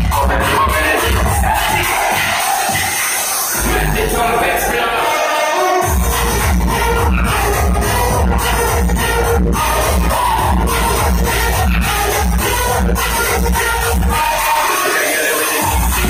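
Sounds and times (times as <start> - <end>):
steady bass beat: 0.0 - 5.1, 5.8 - 14.7, 15.6 - 16.0
loud dance music: 0.0 - 16.0.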